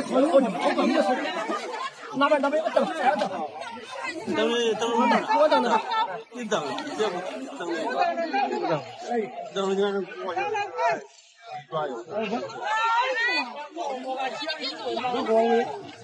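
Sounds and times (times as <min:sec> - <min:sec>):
people chattering: 0:00.0 - 0:16.0.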